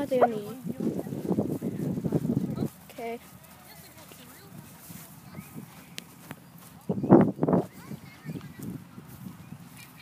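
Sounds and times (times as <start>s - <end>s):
footsteps on grass: 0.0s - 10.0s.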